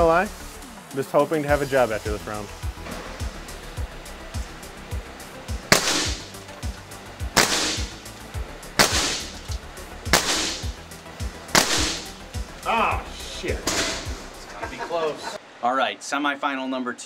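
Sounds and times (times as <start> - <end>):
background music with beat: 0.0 - 15.4
air rifle shots: 5.6 - 6.4, 7.3 - 8.1, 8.7 - 10.8, 11.5 - 12.2.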